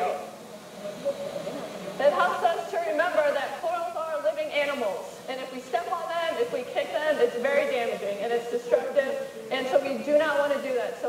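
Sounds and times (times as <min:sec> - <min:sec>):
faint low hum: 0:00.0 - 0:11.0
faint steady hiss: 0:00.0 - 0:11.0.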